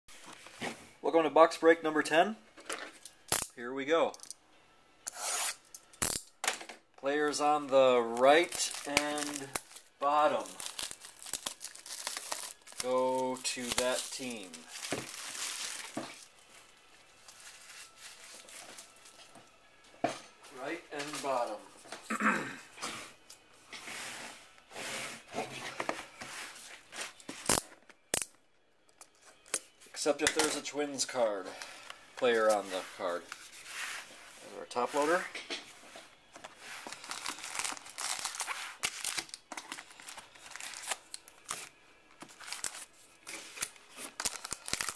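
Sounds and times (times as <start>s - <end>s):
plastic wrap crinkling: 7.1s - 19.3s, 36.3s - 44.9s
man talking: 12.8s - 14.6s.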